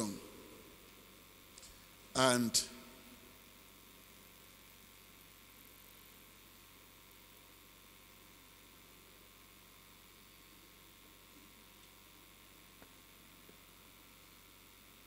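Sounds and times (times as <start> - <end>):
faint hiss: 0.0 - 5.6
low electrical hum: 0.0 - 15.0.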